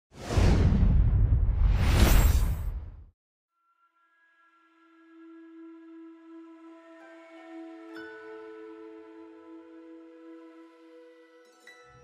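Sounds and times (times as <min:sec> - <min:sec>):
cinematic whoosh: 0:00.2 - 0:03.1.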